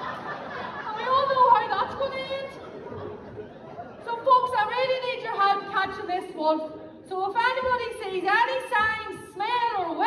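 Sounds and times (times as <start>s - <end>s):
woman speaking: 0.9s - 2.6s, 4.1s - 10.0s.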